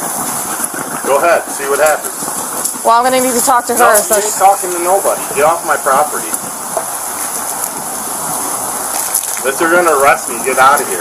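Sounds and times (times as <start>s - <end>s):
water hissing on burning fire: 0.0s - 11.0s.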